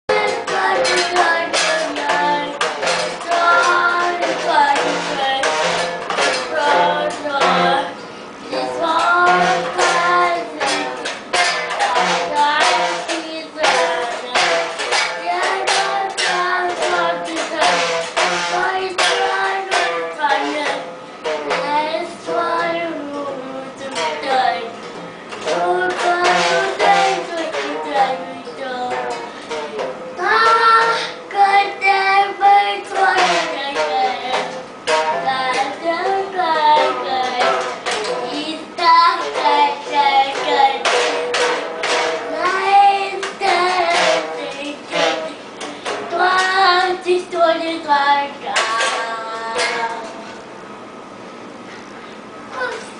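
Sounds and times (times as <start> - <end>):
small child singing: 0.1 - 24.8, 25.4 - 50.4
toy guitar music with beat: 0.1 - 50.6.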